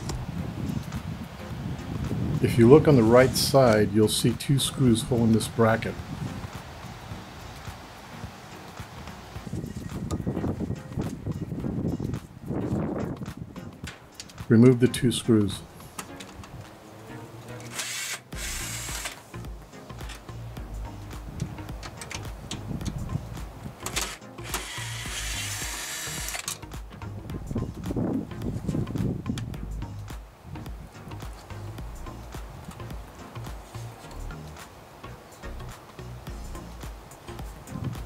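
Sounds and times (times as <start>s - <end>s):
cordless drill backing out screws: 17.6s - 19.2s, 23.8s - 26.6s.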